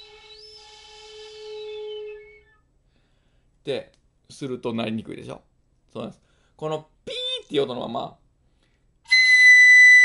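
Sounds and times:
bamboo flute low note: 0:00.0 - 0:02.6.

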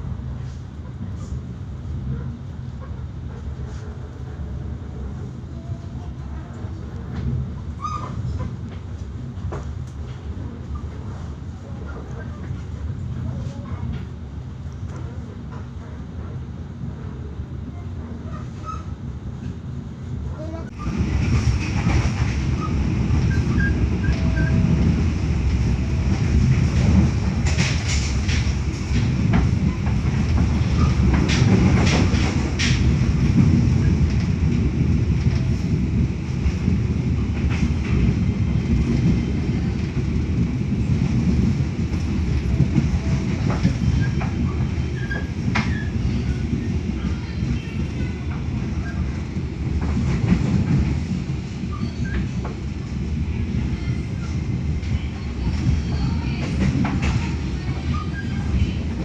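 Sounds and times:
train wheels rumbling on rails: 0:00.0 - 0:59.0.

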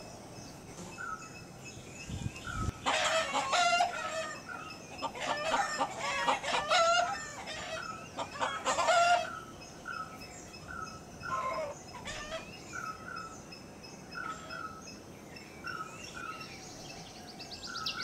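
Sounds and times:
small bird high chirps: 0:15.7 - 0:18.0.

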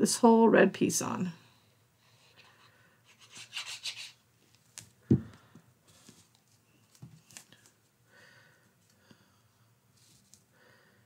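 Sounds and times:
glue bottle tip rubbing on cardstock: 0:03.1 - 0:04.2.

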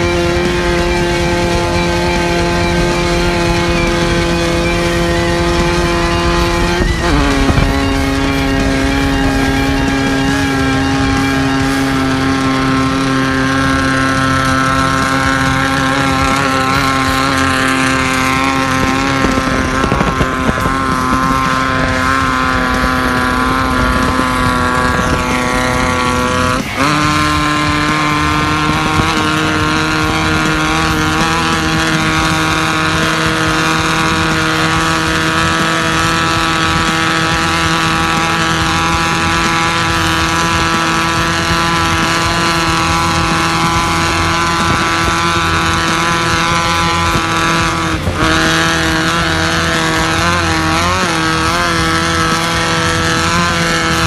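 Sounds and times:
buggy engine running at high speed: 0:00.0 - 0:54.0
road and wind noise: 0:00.0 - 0:54.0.

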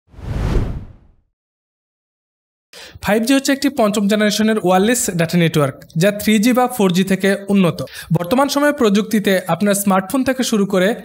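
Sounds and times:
falling whoosh: 0:00.1 - 0:01.2.

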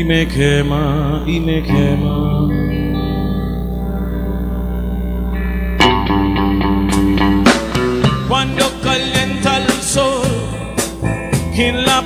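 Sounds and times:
band playing held chord: 0:00.0 - 0:12.0
electric guitar notes picked: 0:00.0 - 0:12.0
drums: 0:05.7 - 0:12.0.

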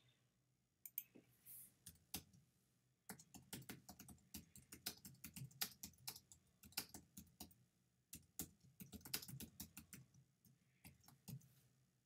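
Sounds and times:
typing on computer keyboard: 0:03.1 - 0:11.4.

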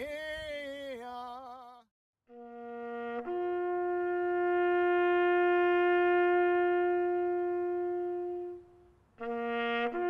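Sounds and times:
horn blowing long note: 0:02.3 - 0:10.0.

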